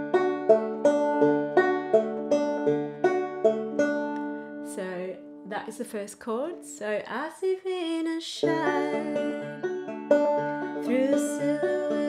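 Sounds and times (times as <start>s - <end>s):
banjo fingerpicked notes: 0.0s - 6.8s, 7.9s - 12.0s.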